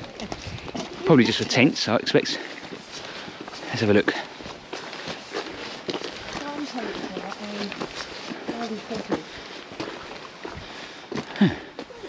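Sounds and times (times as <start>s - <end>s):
footsteps on wet gravel: 0.0s - 12.0s.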